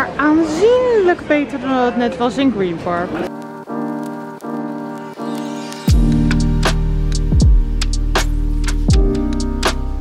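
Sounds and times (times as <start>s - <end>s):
sustained keyboard chords: 3.2s - 10.0s.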